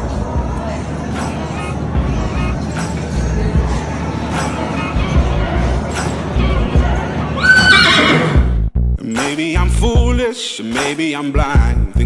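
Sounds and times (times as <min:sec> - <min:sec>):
background music with a beat: 0:01.1 - 0:07.0, 0:08.2 - 0:12.0
horse whinnying: 0:07.4 - 0:08.5.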